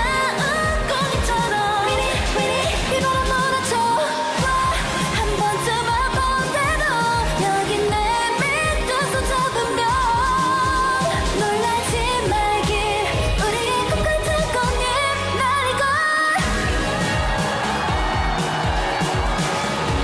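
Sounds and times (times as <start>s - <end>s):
upbeat pop backing track: 0.0s - 20.0s.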